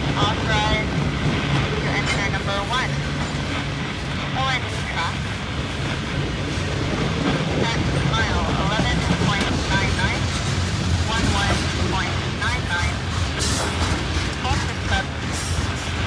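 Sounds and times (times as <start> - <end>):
freight train wheels rumbling on rails: 0.0 - 16.0.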